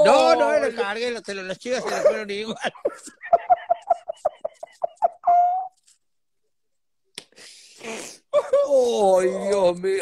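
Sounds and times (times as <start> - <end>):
person laughing: 1.8 - 5.7.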